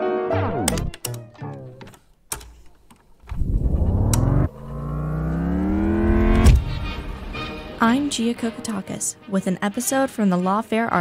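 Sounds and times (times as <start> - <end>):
low bass tone sliding upward: 3.3 - 7.3
click: 4.0 - 4.3.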